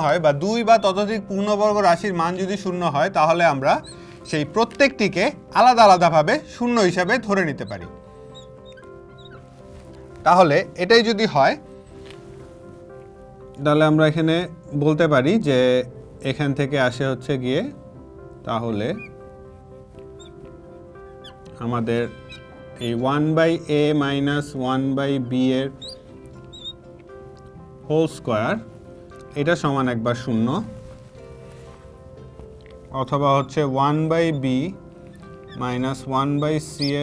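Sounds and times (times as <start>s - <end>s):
soft background music: 0.0s - 37.0s
marker squeaking on glass: 0.6s - 1.2s, 1.9s - 5.2s, 5.8s - 10.2s, 18.7s - 24.7s, 25.5s - 27.1s, 32.6s - 37.0s.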